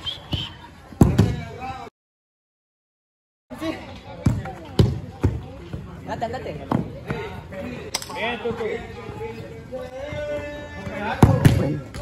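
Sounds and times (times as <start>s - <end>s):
ball thudding: 1.0s - 1.4s
players shouting: 9.7s - 12.0s.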